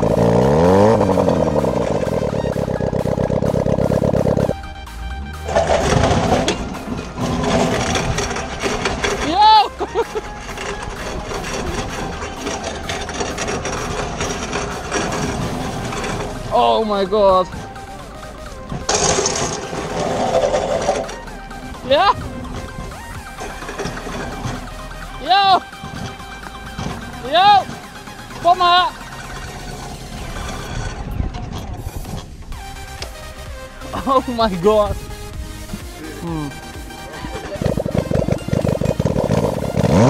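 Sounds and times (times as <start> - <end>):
engine at low revs: 0.0 - 40.0
tyres rattling on brick paving: 0.0 - 40.0.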